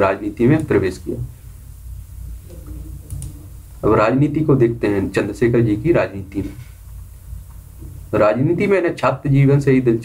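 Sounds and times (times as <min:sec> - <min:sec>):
man speaking: 0:00.0 - 0:01.3, 0:03.8 - 0:06.6, 0:08.1 - 0:10.0
steady low hum: 0:00.0 - 0:10.0
faint clicks: 0:02.5 - 0:03.4.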